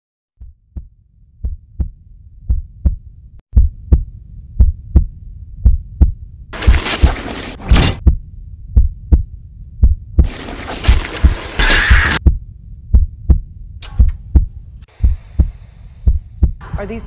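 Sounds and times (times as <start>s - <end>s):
deep heartbeat thumps: 0.4s - 6.9s, 7.7s - 11.6s, 12.2s - 17.0s
faint hum: 12.2s - 17.0s.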